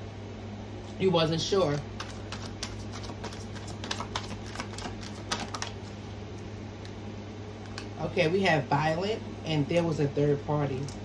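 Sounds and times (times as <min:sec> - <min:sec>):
steady low hum: 0:00.0 - 0:11.0
cards clicking and snapping: 0:02.0 - 0:05.8.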